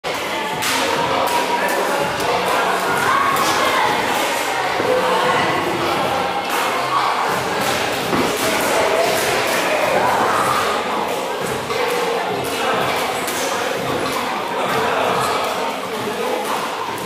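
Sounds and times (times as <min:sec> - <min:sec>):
background hubbub: 0:00.0 - 0:17.0.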